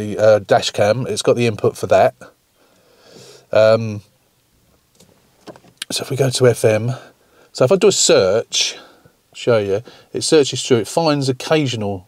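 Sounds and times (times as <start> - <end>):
man's voice: 5.8 - 12.0.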